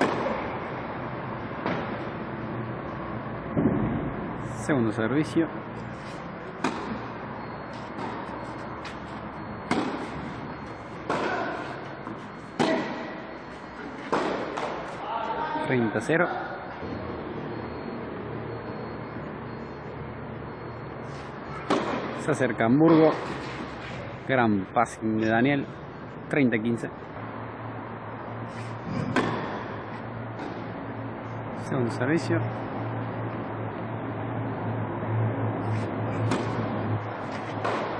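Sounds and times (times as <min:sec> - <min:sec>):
tennis ball hit by racket: 0:00.0 - 0:00.5, 0:06.6 - 0:07.1, 0:09.6 - 0:13.2, 0:13.8 - 0:15.0, 0:21.6 - 0:22.2, 0:29.0 - 0:29.7, 0:35.7 - 0:37.9
steady low hum: 0:00.0 - 0:37.9.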